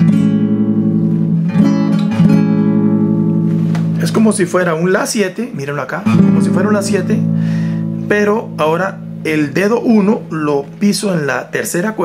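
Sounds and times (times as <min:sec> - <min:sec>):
classical guitar chord strums: 0:00.0 - 0:11.3.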